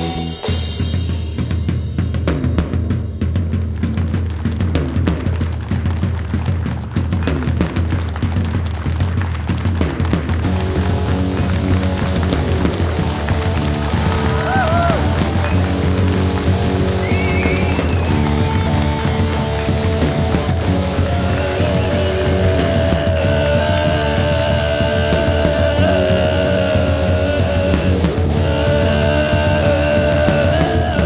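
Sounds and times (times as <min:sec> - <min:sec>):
fast drumming with cymbals: 0:00.0 - 0:31.0
electric guitar chords: 0:10.4 - 0:31.0.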